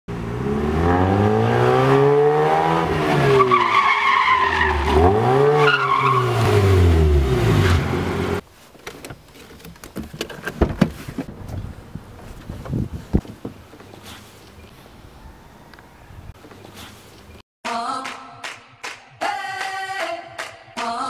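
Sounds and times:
rotary engine revving: 0:00.2 - 0:03.6, 0:04.6 - 0:08.4.

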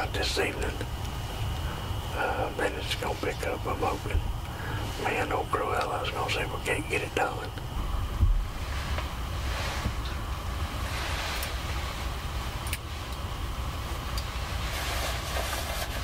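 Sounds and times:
hiss of outdoor air: 0:00.0 - 0:16.0
wind rumble on microphone: 0:07.7 - 0:16.0.

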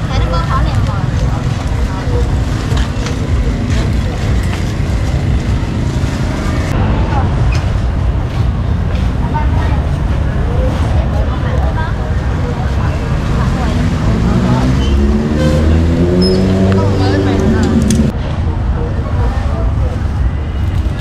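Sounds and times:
people talking: 0:00.0 - 0:05.1, 0:06.3 - 0:21.0
motorbike engine speeding up: 0:00.0 - 0:07.4, 0:08.1 - 0:18.2
motorbikes: 0:00.0 - 0:21.0
traffic: 0:00.0 - 0:21.0.

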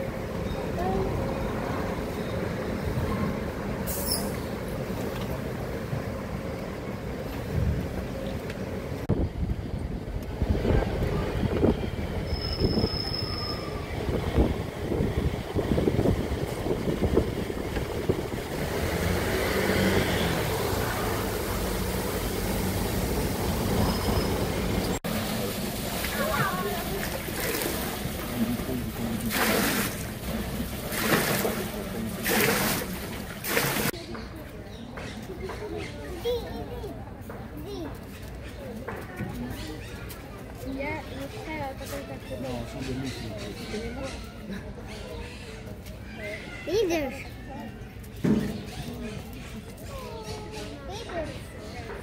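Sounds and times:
steady city rumble: 0:00.0 - 0:52.0.

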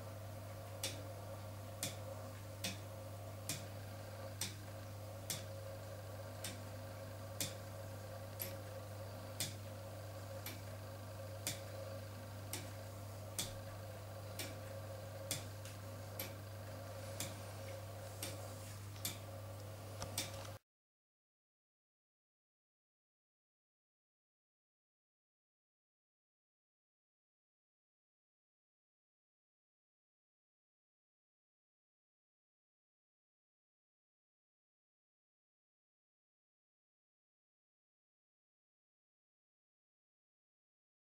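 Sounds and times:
steady low hum: 0:00.0 - 0:20.6
clock escapement ticking: 0:07.4 - 0:07.6, 0:08.3 - 0:08.6, 0:10.4 - 0:10.7, 0:11.4 - 0:11.7, 0:13.3 - 0:13.6, 0:14.3 - 0:15.5, 0:16.2 - 0:16.4.

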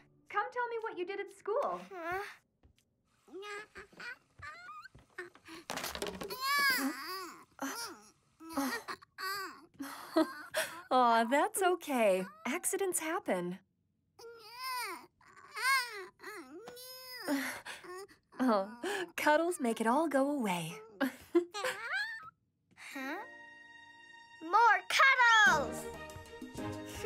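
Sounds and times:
baby crying: 0:03.3 - 0:05.4, 0:06.3 - 0:09.7, 0:14.2 - 0:18.1, 0:20.8 - 0:22.3
baby babbling: 0:14.2 - 0:17.3.

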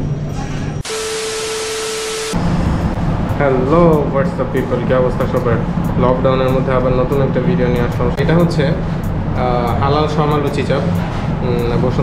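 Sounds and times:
low hum: 0:00.0 - 0:12.0
static white noise hiss: 0:00.8 - 0:10.8
steady tone: 0:00.8 - 0:12.0.

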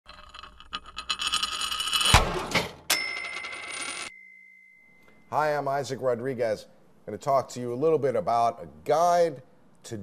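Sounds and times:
high ringing tone: 0:02.9 - 0:05.6.

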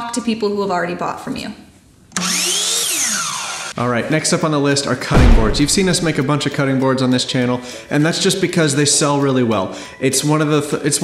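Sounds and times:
power tool whirring: 0:02.2 - 0:03.8.

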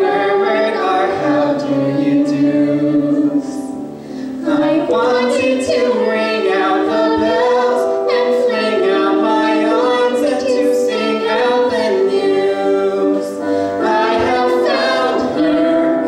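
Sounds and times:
man and woman singing duet: 0:00.0 - 0:16.0.

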